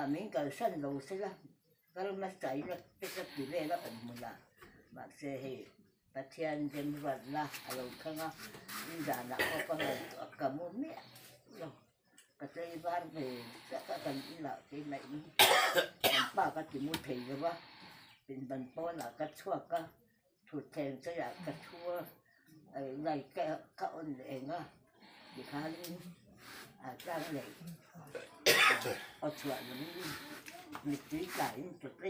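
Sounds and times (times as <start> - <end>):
elderly woman speaking: 0.0 - 32.0
loud cough: 9.4 - 10.2, 15.4 - 16.4, 28.1 - 29.2.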